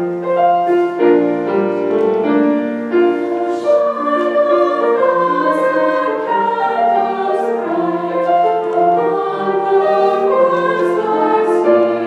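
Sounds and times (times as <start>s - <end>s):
choir singing a carol: 0.7s - 12.0s.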